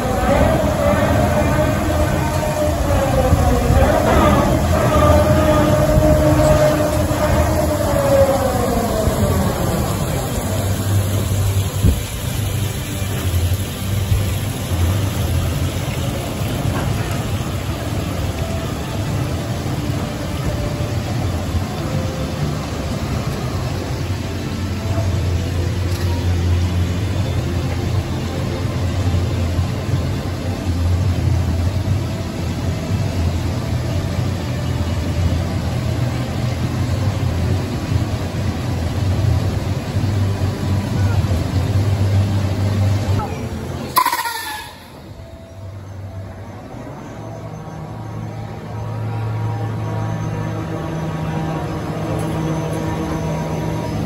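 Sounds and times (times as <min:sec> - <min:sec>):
continuous wash of noise: 0:00.0 - 0:54.0
ride machinery humming: 0:00.0 - 0:54.0.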